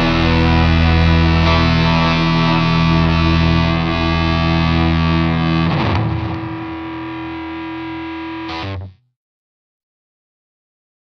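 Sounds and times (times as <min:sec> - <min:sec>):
distorted electric guitar chords: 0:00.0 - 0:09.0.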